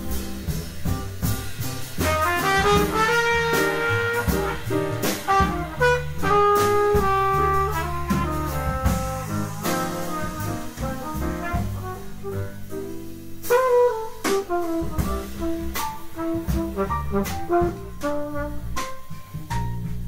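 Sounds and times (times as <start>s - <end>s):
cymbal and drum strikes: 0.0s - 20.0s
jazz quartet playing: 0.0s - 20.0s
trumpet melody: 1.9s - 19.2s.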